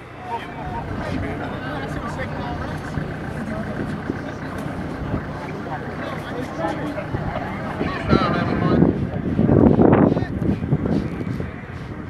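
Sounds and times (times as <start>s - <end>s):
low machinery hum: 0.0s - 12.0s
many voices chattering: 0.0s - 12.0s.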